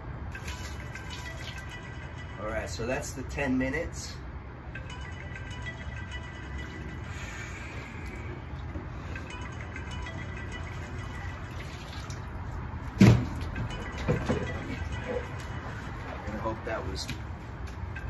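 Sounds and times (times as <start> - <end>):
water sloshing and dripping: 0.3 - 1.9, 10.4 - 16.3
loud thump: 13.0 - 13.3.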